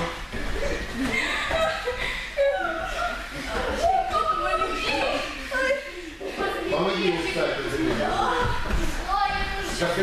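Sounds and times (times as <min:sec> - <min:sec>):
indistinct chatter: 0:00.0 - 0:10.0
people laughing: 0:00.9 - 0:05.1.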